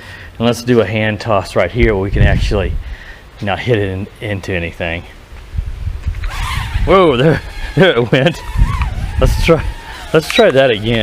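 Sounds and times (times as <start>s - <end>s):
wind rumbling on microphone: 1.6s - 3.1s, 5.3s - 11.0s
drone motors whining: 6.2s - 11.0s.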